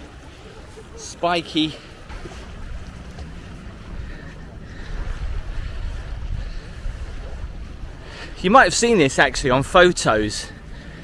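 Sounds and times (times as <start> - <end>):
wind buffeting microphone: 1.8 - 11.0.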